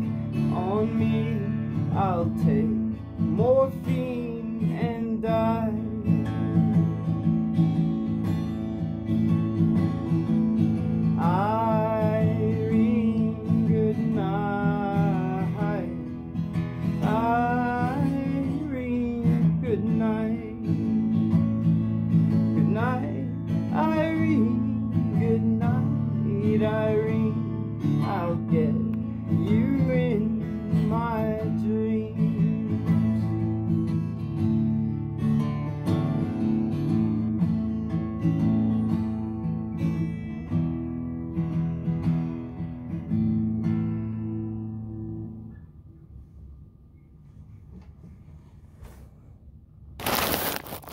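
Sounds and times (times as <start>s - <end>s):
man singing wordlessly: 0.0s - 6.4s, 11.1s - 16.3s, 17.0s - 21.1s, 22.5s - 33.2s
acoustic guitar strumming: 0.0s - 45.7s.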